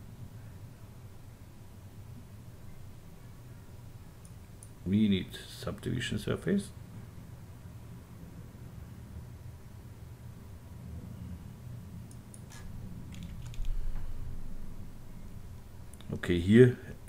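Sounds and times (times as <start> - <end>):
low steady hum: 0.0 - 17.0
mouse and keyboard clicks: 12.1 - 13.8.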